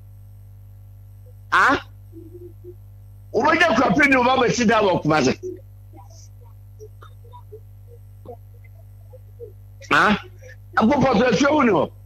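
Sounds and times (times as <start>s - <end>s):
electrical mains hum: 0.0s - 12.0s
faint soft blips: 2.1s - 2.8s.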